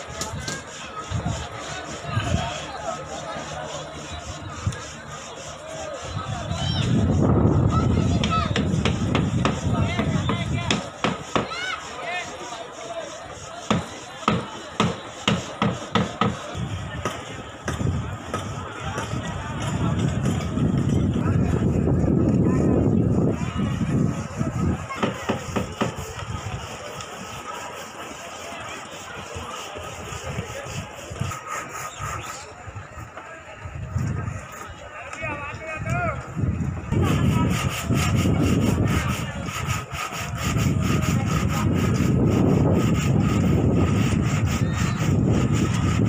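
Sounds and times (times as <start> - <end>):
indistinct talk of people: 0.0 - 46.0
outdoor ambience: 0.0 - 46.0.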